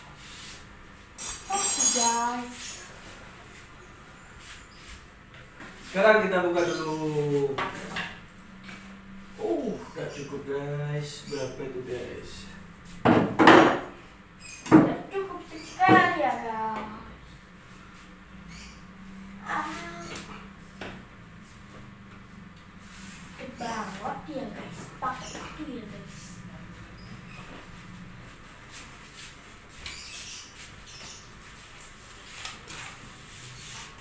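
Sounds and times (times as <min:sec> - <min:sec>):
steady low hum: 0:00.0 - 0:29.8
creaking scrape: 0:28.7 - 0:34.0.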